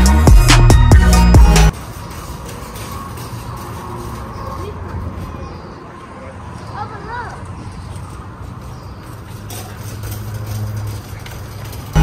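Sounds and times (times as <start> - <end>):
shopping cart rolling on concrete: 1.7 - 12.0.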